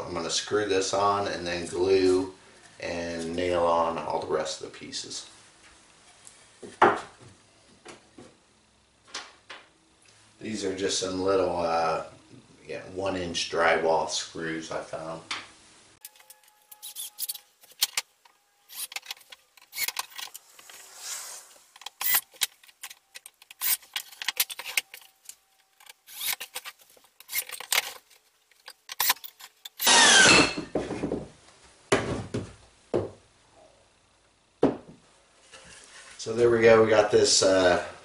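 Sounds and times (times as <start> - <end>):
cordless drill driving screws: 18.7 - 20.4, 21.8 - 25.1, 25.8 - 28.0, 28.9 - 30.5.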